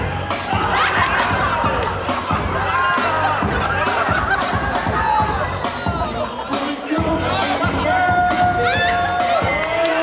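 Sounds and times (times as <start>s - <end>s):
crowd whooping and shouting: 0.0s - 10.0s
loud dance music: 0.0s - 10.0s.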